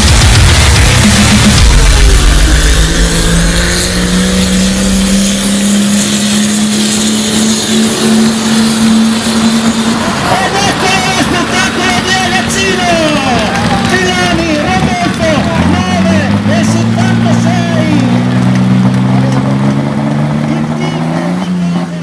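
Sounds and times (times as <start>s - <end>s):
tractor engine at full throttle: 0.0s - 22.0s
announcer speaking over loudspeaker: 10.1s - 18.4s, 20.4s - 22.0s.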